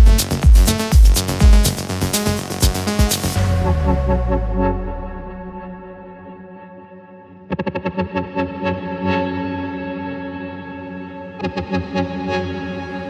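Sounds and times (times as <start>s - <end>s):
fast run of echoing notes: 0.0s - 7.0s
held synth chord: 0.0s - 7.6s
electronic music: 0.0s - 13.0s.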